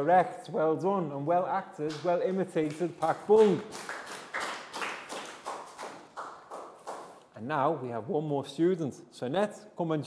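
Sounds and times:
people clapping hands: 1.8 - 7.3.

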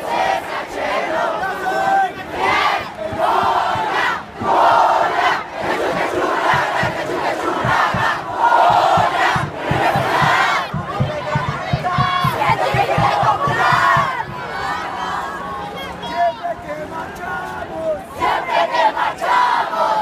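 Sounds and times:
crowd shouting a protest chant: 0.0 - 20.0.

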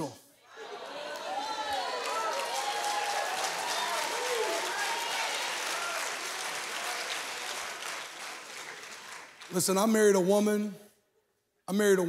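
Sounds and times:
audience applause: 0.5 - 9.7.

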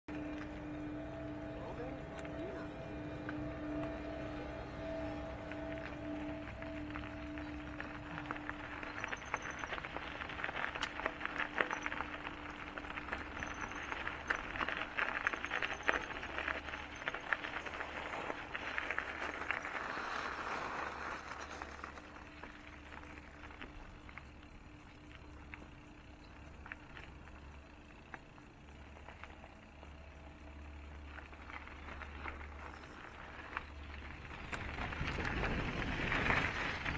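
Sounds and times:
bike rattling with small clicks: 0.1 - 36.9
bike tyres crunching on gravel: 0.1 - 36.9.

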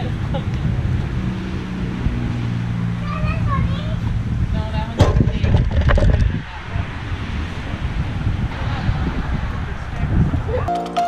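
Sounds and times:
wind buffeting microphone: 0.0 - 10.7.

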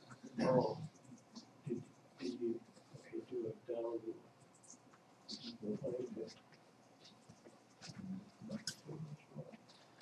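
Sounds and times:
faint voices: 0.0 - 9.7.

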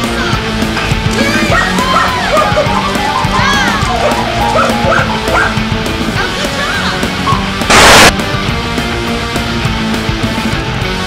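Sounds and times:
dog whining and yipping: 1.5 - 5.6.

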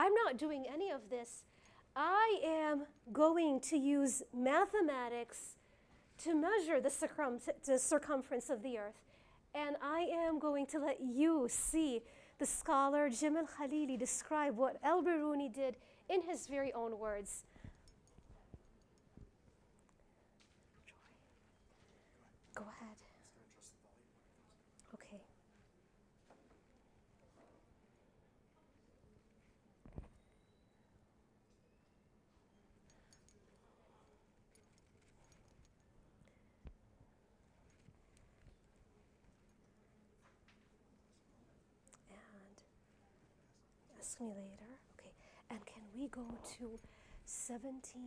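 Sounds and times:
faint quiet speech: 20.7 - 25.8, 27.0 - 30.0.

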